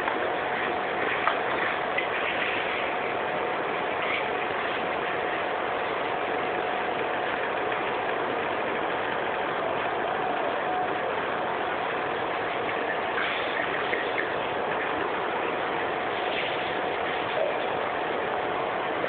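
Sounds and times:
faint constant whine: 0:00.0 - 0:19.0.

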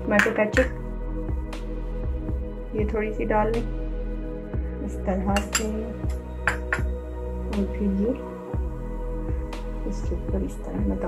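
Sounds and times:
metal spoon clinking glass bowl: 0:05.4 - 0:06.9.

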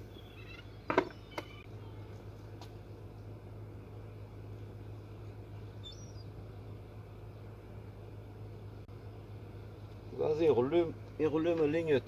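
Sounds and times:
faint high chirp: 0:00.0 - 0:02.1, 0:05.8 - 0:06.3
low mechanical hum: 0:00.0 - 0:12.0.

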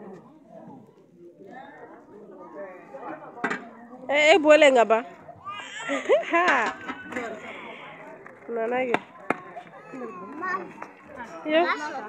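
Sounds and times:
group talking and calling out: 0:00.0 - 0:12.0.

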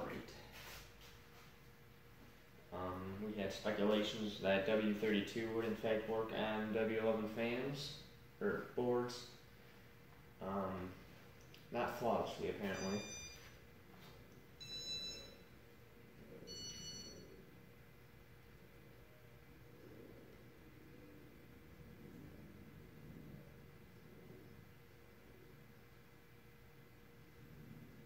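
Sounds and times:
ceiling fan hum: 0:00.0 - 0:28.0
short high-pitched electronic beeps: 0:12.7 - 0:13.5.

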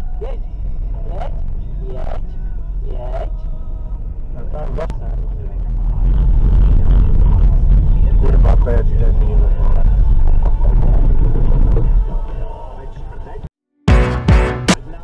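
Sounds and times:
people talking: 0:00.0 - 0:03.4, 0:04.4 - 0:13.5
car engine and tyres rumbling: 0:00.0 - 0:13.5.

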